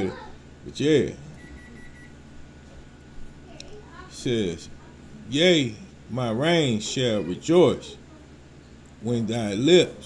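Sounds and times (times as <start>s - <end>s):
low room hum: 0.0s - 10.0s
thin electronic beep: 1.4s - 2.2s.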